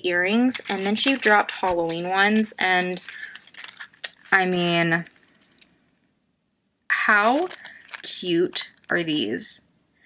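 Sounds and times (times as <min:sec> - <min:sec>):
faint handling noise: 0:00.5 - 0:06.1, 0:07.2 - 0:09.0.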